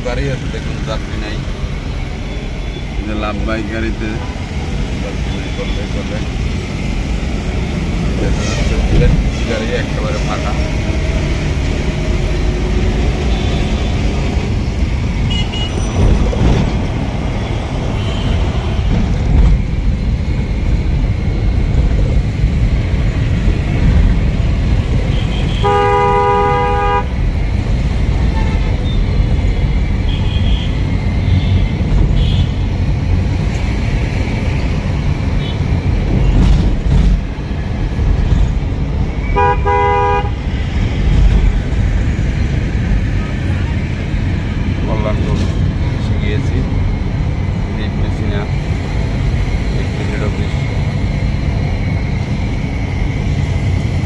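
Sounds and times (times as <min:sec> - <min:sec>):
vehicle engine and road rumble: 0:00.0 - 0:54.0
vehicle horn blast: 0:15.3 - 0:15.8, 0:25.1 - 0:27.1, 0:39.3 - 0:40.4.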